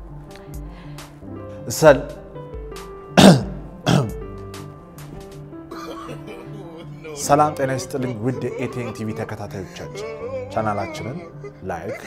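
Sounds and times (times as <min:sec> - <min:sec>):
background music: 0:00.0 - 0:12.0
person clearing throat: 0:03.2 - 0:04.2, 0:05.7 - 0:07.1.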